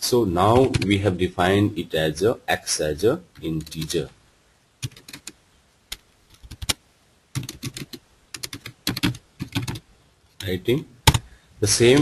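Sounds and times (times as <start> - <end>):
computer keyboard typing: 0.6 - 0.9, 4.8 - 9.8.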